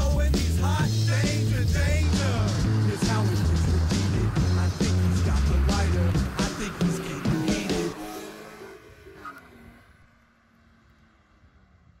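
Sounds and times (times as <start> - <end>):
car engine running: 0.0 - 11.3.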